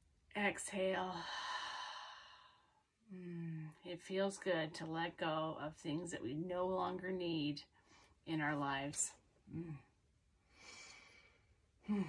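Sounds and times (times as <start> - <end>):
woman speaking: 0.4 - 1.6, 3.2 - 7.6, 8.3 - 9.8.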